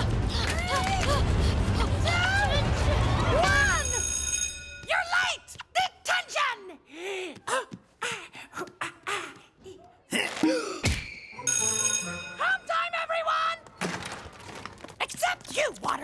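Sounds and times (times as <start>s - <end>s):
bright ringing: 11.1s - 12.7s
cartoon music: 11.3s - 12.9s.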